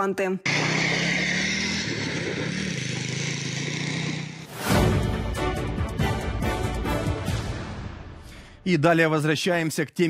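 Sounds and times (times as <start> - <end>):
small motorcycle engine running: 0.5 - 4.5.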